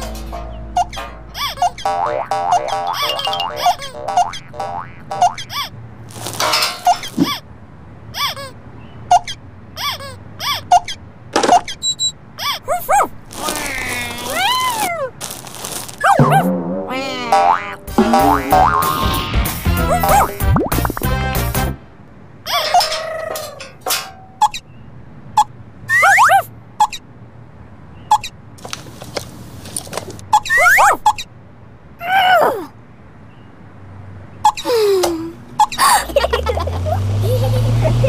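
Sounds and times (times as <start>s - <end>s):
springy boing effects: 16.2s - 19.4s
playful children's background music: 16.3s - 21.8s.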